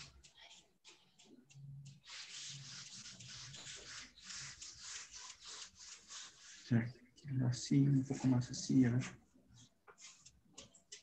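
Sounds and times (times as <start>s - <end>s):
paintbrush scrubbing on paper: 1.8s - 7.0s, 9.6s - 10.7s.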